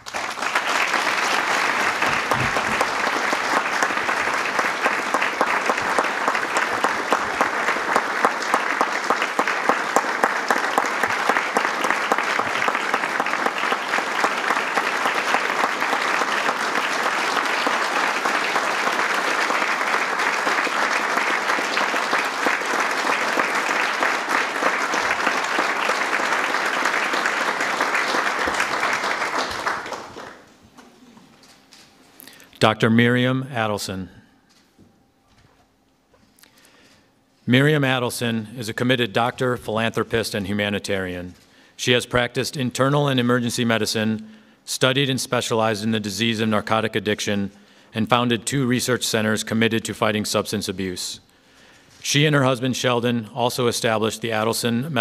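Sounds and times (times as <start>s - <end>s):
audience applauding: 0.0s - 31.0s.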